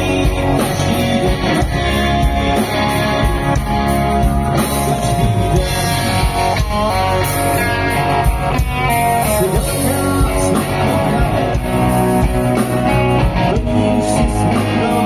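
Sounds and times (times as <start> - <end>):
live rock band playing: 0.0 - 15.0.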